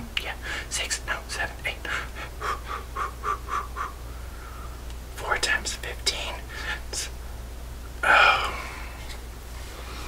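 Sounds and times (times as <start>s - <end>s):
man muttering: 1.8s - 4.0s, 8.0s - 8.6s.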